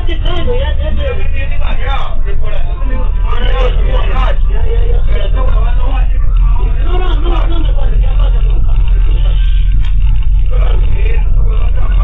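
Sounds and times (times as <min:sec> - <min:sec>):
bus engine idling: 0:00.0 - 0:12.0
indistinct voices talking: 0:00.0 - 0:12.0.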